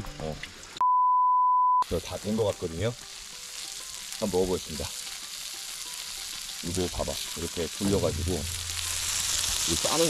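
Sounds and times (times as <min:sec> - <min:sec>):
censor bleep tone: 0:00.8 - 0:01.8.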